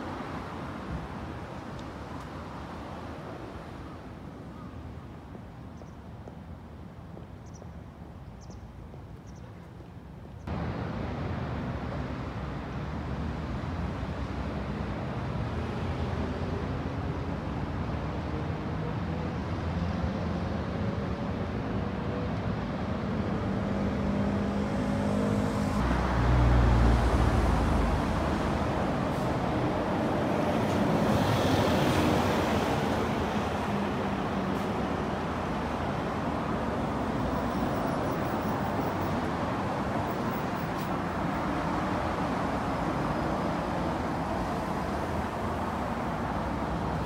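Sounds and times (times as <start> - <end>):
car engines passing: 10.4 - 47.0.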